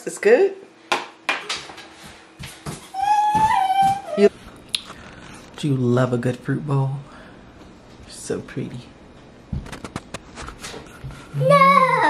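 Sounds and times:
dog whining: 0:02.9 - 0:04.3.

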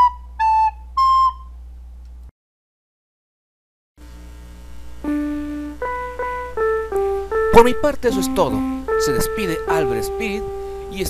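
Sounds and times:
electronic keyboard melody: 0:00.0 - 0:01.6, 0:05.0 - 0:11.0
low steady hum: 0:04.0 - 0:11.0.

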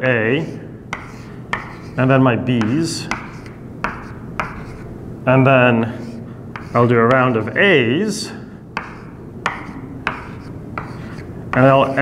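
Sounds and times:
chalk tapping on blackboard: 0:00.9 - 0:02.0, 0:02.6 - 0:04.8, 0:05.8 - 0:07.4, 0:08.8 - 0:12.0
chalk scraping on blackboard: 0:01.0 - 0:02.0, 0:02.6 - 0:04.9, 0:05.8 - 0:07.2, 0:08.8 - 0:12.0.

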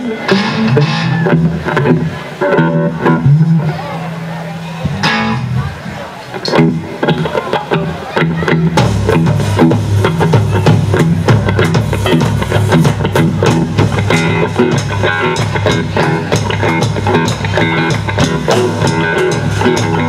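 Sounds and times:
live rock band playing: 0:00.0 - 0:20.0.

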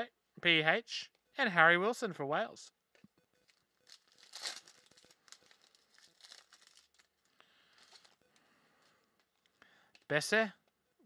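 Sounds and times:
foil pack crinkling and tearing: 0:03.4 - 0:08.2.

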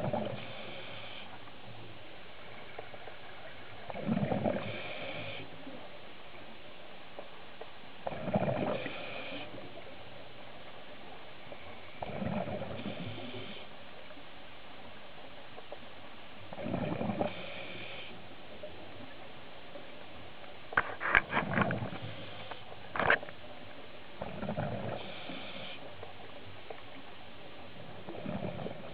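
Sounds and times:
diver breathing through regulator: 0:00.1 - 0:01.4, 0:08.2 - 0:09.6, 0:24.3 - 0:25.9.

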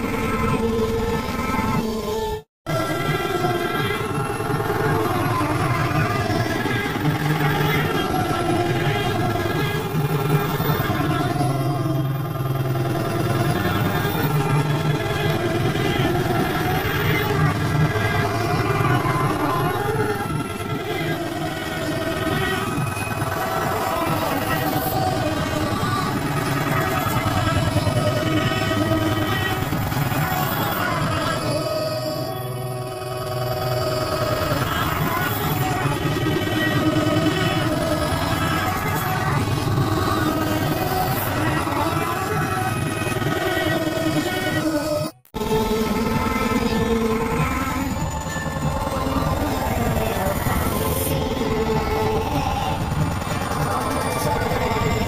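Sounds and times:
heavily distorted music: 0:02.7 - 0:55.0.

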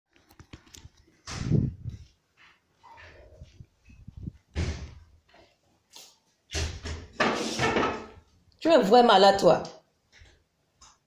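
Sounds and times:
rustling thump: 0:04.2 - 0:05.1.

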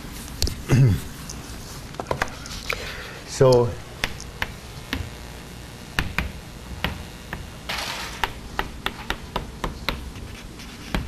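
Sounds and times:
chalk tapping on blackboard: 0:04.0 - 0:05.1, 0:06.0 - 0:07.5, 0:08.2 - 0:11.0
chalk scraping: 0:10.1 - 0:11.0.

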